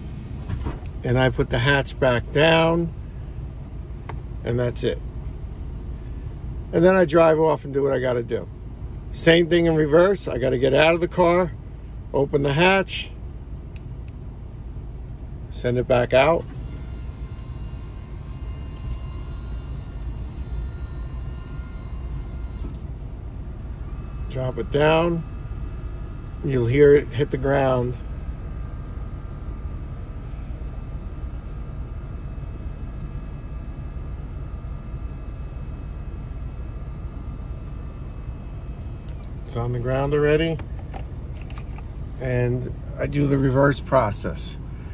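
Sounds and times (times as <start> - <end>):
climate control fan blowing: 0.0 - 44.9
engine idling in vehicle cabin: 0.0 - 44.9
faint steady whine: 0.0 - 44.9.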